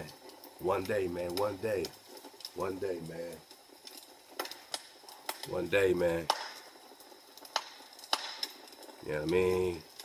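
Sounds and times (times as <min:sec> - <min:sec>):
wood fire popping and crackling: 0:00.0 - 0:10.0.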